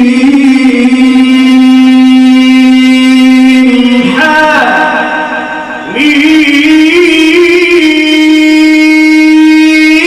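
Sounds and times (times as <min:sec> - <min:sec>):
man chanting a long vowel: 0:00.0 - 0:10.0.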